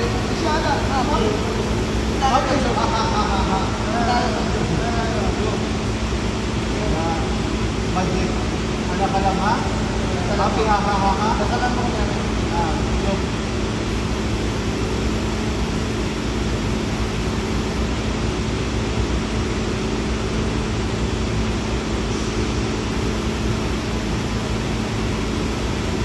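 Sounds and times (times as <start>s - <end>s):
machinery low hum: 0.0s - 26.0s.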